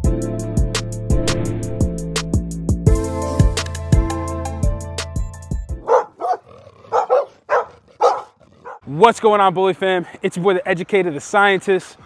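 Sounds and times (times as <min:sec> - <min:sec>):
dog barking: 0:05.8 - 0:08.8.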